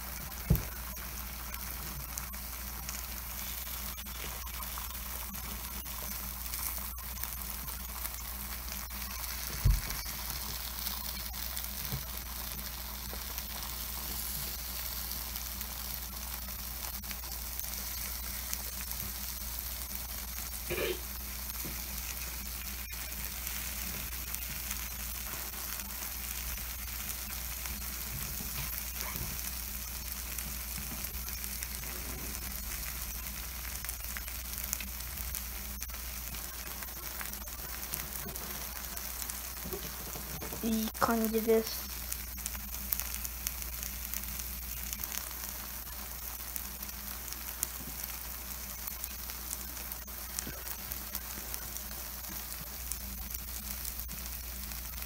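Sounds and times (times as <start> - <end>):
batter sizzling in a pan: 0.0 - 55.0.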